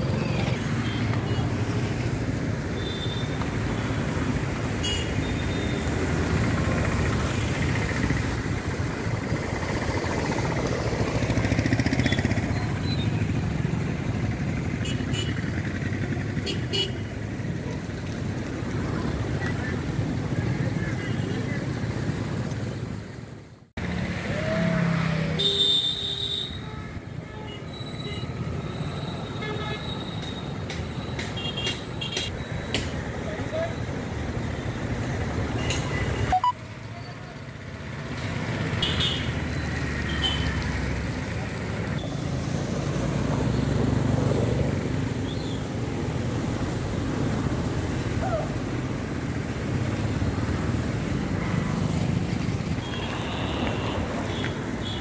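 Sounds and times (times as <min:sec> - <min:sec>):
steady traffic hum: 0:00.0 - 0:55.0
motorcycle engines running: 0:05.3 - 0:20.8
vehicle horns tooting: 0:52.8 - 0:55.0.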